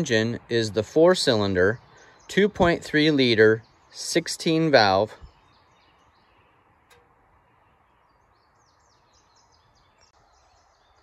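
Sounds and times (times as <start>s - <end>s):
faint bird chirps: 1.6s - 11.0s.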